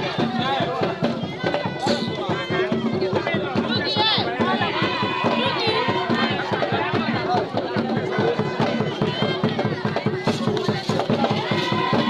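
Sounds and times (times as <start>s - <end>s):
fast steady drumming: 0.0s - 12.0s
many voices singing and shouting: 0.0s - 12.0s.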